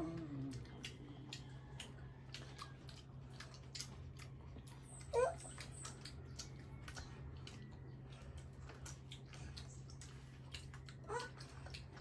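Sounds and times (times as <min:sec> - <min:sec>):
people chewing fruit: 0:00.0 - 0:12.0.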